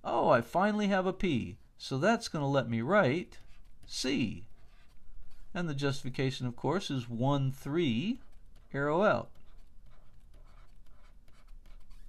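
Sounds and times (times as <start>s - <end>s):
stylus scratching on tablet: 2.2s - 12.0s.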